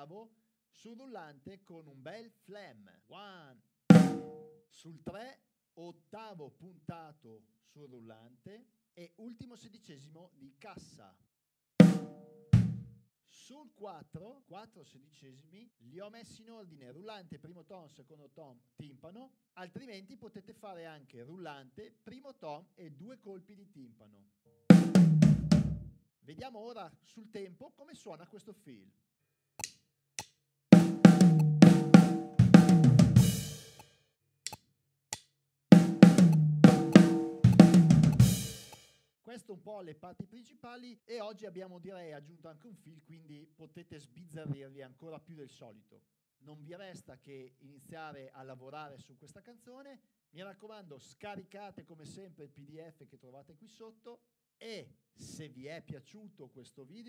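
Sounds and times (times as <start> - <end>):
bass drum hit: 3.9 - 4.4, 24.7 - 25.8, 30.8 - 33.6, 35.8 - 38.6
snare drum hit: 3.9 - 4.5, 11.8 - 12.9, 24.7 - 25.8, 30.8 - 33.8, 35.8 - 38.9.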